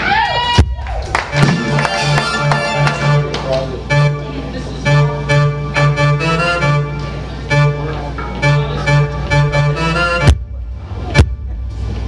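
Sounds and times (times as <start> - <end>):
drum hits: 0.6 - 3.2, 10.1 - 11.9
pulsing bass line: 0.6 - 12.0
keyboard chords: 1.3 - 12.0.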